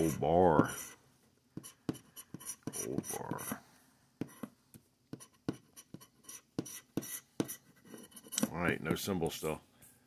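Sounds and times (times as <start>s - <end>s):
scraper scratching lottery ticket: 0.0s - 1.0s.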